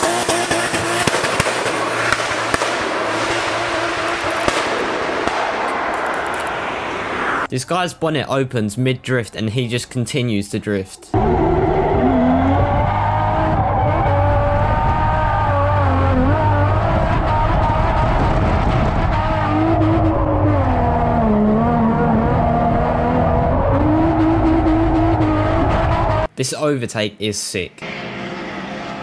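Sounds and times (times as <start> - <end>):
car engine at high revs: 0.0 - 7.5, 11.2 - 26.3, 27.8 - 29.0.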